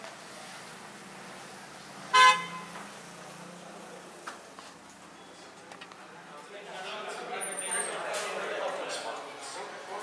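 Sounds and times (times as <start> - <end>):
vehicle horn toot: 2.1 - 2.8.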